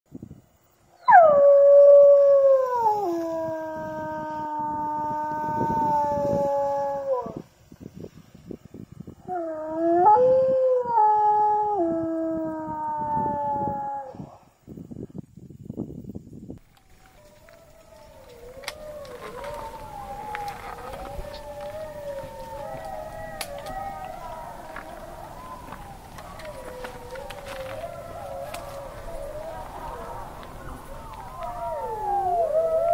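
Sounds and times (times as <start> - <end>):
wolf howl through megaphone: 1.0 - 7.4, 9.2 - 14.3, 16.9 - 32.9.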